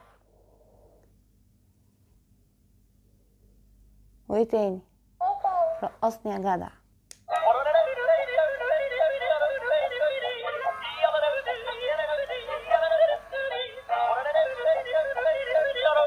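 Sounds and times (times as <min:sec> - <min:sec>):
toy speaker playing high sung melody: 0:07.4 - 0:16.0.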